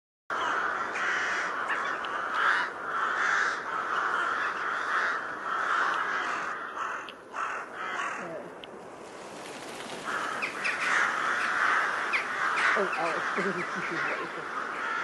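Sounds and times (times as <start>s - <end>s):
crows cawing: 0.3s - 8.6s, 9.5s - 15.0s.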